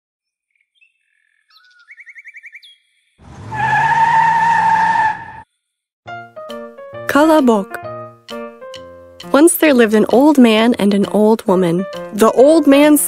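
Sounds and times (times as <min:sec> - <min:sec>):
cartoon birds chirping: 0:00.6 - 0:05.4
cartoon car engine rising: 0:03.2 - 0:05.4
tyre squeal tone: 0:03.4 - 0:05.5.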